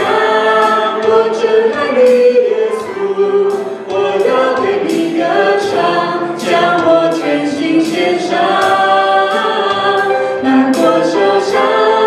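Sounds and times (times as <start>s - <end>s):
drum kit strokes: 0.0s - 12.0s
live band accompaniment: 0.0s - 12.0s
people singing into microphones: 0.0s - 12.0s.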